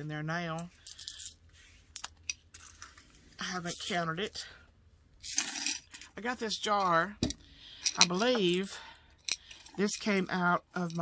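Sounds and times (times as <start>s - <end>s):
coins clinking into glass jar: 0.6s - 1.4s, 5.2s - 6.2s.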